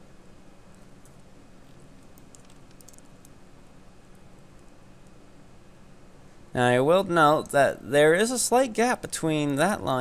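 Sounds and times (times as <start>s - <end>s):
steady low hum: 0.0s - 10.0s
computer mouse clicking: 2.0s - 3.4s.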